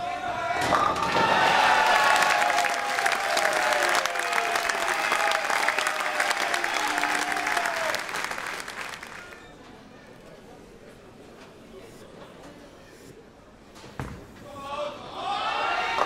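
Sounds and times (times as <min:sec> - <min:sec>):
audience applauding: 0:01.3 - 0:09.4.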